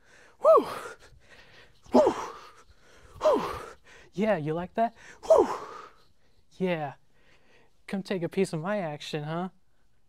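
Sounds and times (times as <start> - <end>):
man crying out: 0.4 - 1.0, 1.9 - 2.4, 3.2 - 3.7, 5.2 - 5.9.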